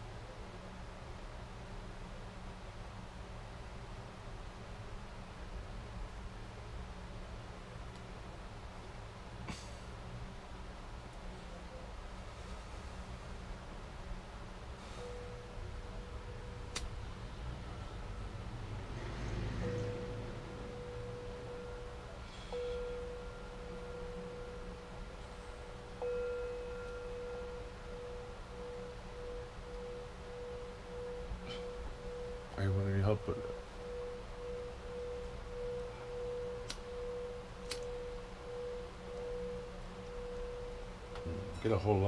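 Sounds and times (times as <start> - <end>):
steady ringing tone: 12.8 - 42.0.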